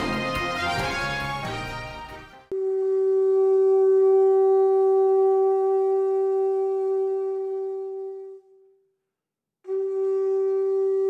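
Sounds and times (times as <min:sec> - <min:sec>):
music track: 0:00.0 - 0:02.7
conch shell trumpet note: 0:00.0 - 0:08.8, 0:09.7 - 0:11.0.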